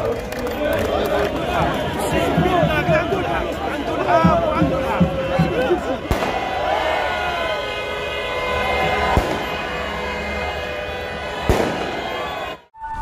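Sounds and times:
large crowd noise: 0:00.0 - 0:13.0
fireworks bangs: 0:04.2 - 0:12.5.

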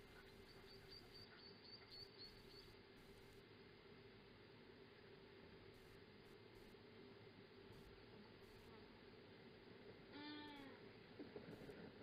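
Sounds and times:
steady low hum: 0:00.0 - 0:12.0
short animal call: 0:10.1 - 0:10.8.

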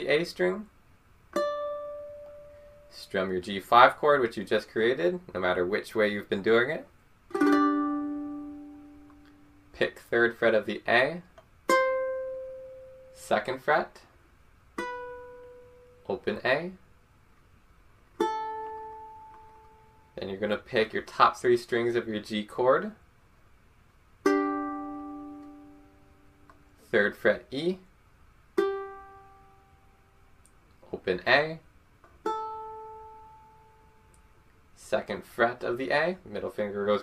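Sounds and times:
ukulele chord strummed: 0:01.3 - 0:03.0, 0:07.3 - 0:09.7, 0:11.7 - 0:13.3, 0:14.8 - 0:16.1, 0:18.2 - 0:20.2, 0:24.2 - 0:26.7, 0:28.6 - 0:30.0, 0:32.2 - 0:34.0.

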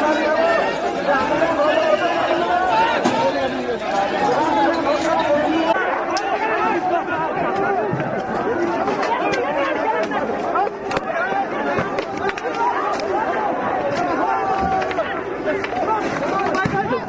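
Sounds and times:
crowd shouting: 0:00.0 - 0:17.0.

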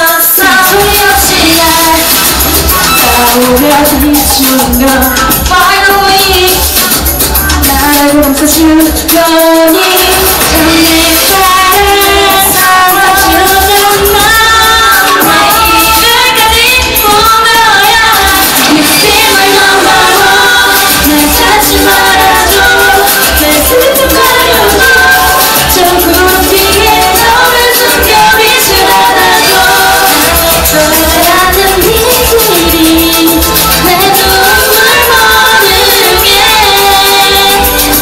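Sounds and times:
woman singing pop song: 0:00.0 - 0:38.0
pulsing bass beat: 0:00.6 - 0:38.0.

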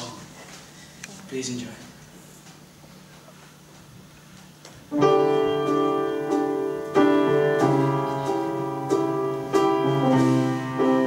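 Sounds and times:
piano chords: 0:04.9 - 0:11.0.

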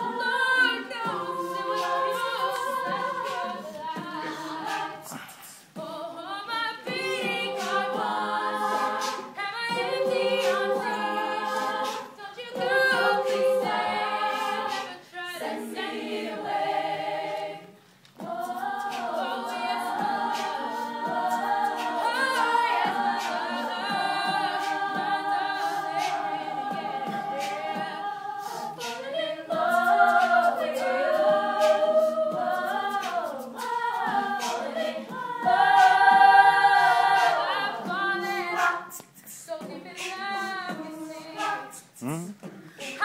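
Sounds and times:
female a cappella group singing: 0:00.0 - 0:43.0.

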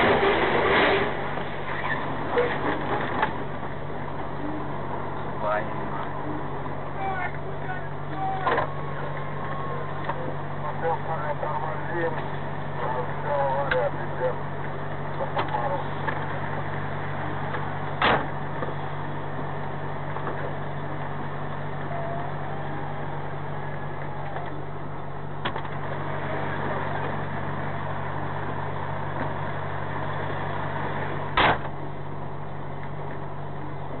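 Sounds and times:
diesel engine idling: 0:01.1 - 0:34.0.

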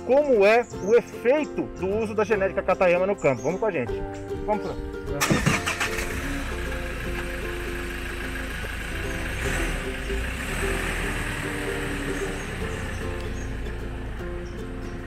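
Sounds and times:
background music: 0:00.0 - 0:15.0
pickup truck engine rumbling: 0:05.1 - 0:15.0.

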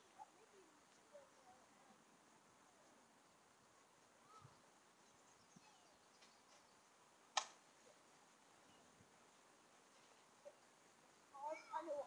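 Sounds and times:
faint high chirps: 0:04.2 - 0:07.0
sharp click: 0:07.3 - 0:07.6.

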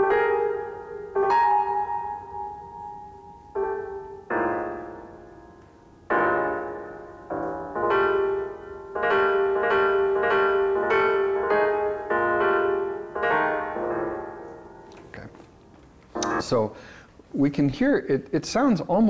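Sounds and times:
solo piano chords: 0:00.0 - 0:17.0.

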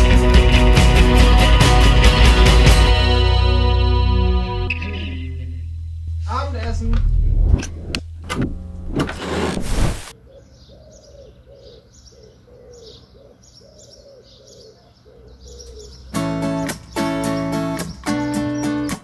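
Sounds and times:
band music: 0:00.0 - 0:05.2
strummed guitar chords: 0:00.0 - 0:09.0, 0:16.2 - 0:19.0
pigeon cooing: 0:10.1 - 0:16.1
small birds chirping: 0:10.1 - 0:19.0.

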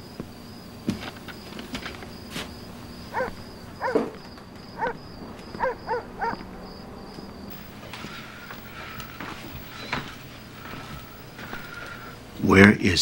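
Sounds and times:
crickets chirping: 0:00.0 - 0:13.0
short rising and falling squeaks: 0:05.6 - 0:12.2.

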